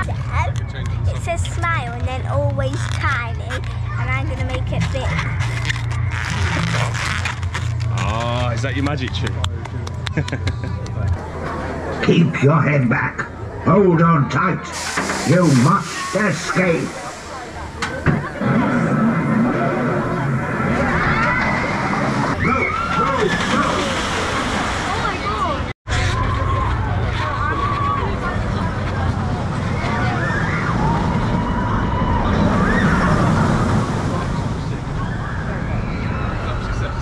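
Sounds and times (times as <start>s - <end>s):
balloon rubbing and squeaking: 4.6s - 8.6s
roller coaster train launching: 14.7s - 37.0s
riders screaming: 20.6s - 24.1s, 29.8s - 33.9s.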